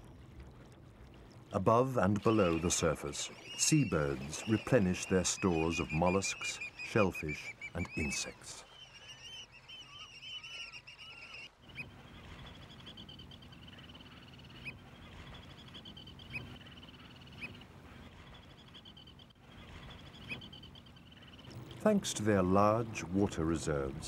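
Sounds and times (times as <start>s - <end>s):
seabirds chattering trill: 1.3s - 24.0s.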